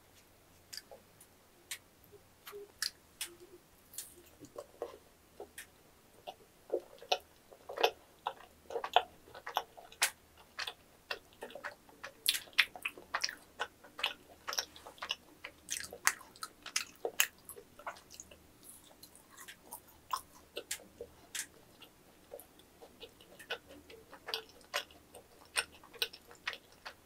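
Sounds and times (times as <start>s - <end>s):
person chewing: 2.5s - 27.0s.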